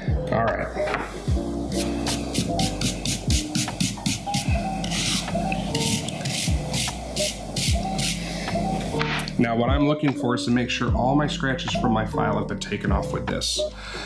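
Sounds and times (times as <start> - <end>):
background music with beat: 0.0 - 14.0.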